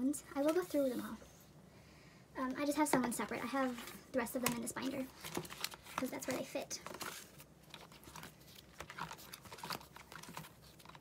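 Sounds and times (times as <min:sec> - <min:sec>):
plastic binder pages turning: 0:03.3 - 0:11.0.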